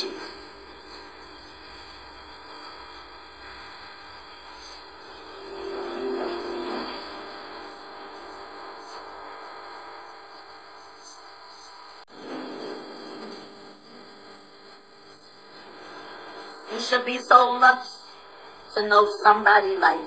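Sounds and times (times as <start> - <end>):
steady hum and room noise: 0.0 - 20.0.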